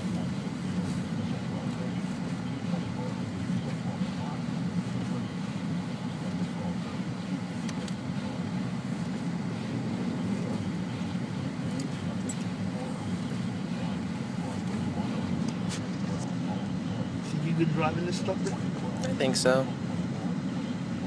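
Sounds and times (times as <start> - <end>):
road and engine noise in car: 0.0 - 21.0.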